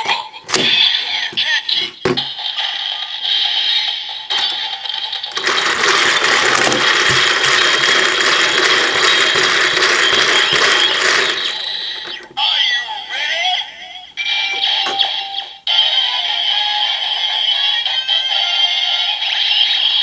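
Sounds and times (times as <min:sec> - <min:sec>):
toy gears clicking clatter: 0:04.3 - 0:12.7.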